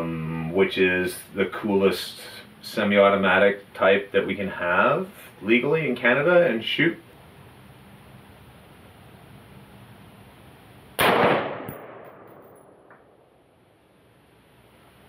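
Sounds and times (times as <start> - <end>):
low steady background hiss: 0.0 - 15.0
rifle shot with ringing tail: 11.0 - 13.3.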